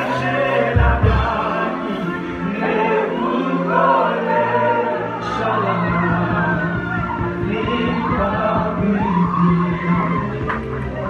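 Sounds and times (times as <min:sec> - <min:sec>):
instrumental accompaniment: 0:00.0 - 0:11.0
voices singing together: 0:00.0 - 0:11.0.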